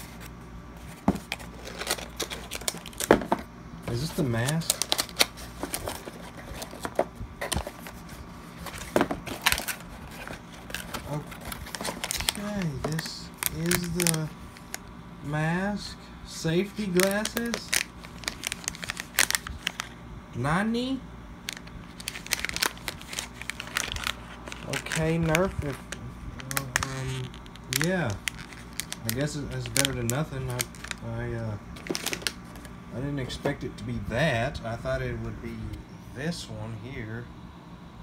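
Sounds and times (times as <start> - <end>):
plastic wrap crinkling: 0.9 - 14.8, 16.8 - 20.0, 21.4 - 32.7.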